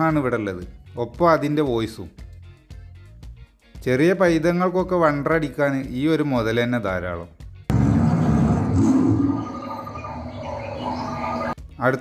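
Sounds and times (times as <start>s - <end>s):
recorded animal sounds: 7.7s - 11.6s
recorded lion roar: 7.7s - 11.6s.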